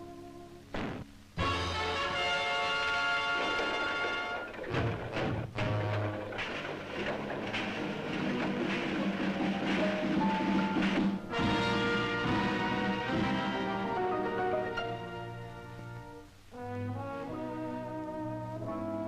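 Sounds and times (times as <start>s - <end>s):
orchestral cartoon music: 1.4s - 19.0s
drum hits: 3.3s - 13.9s.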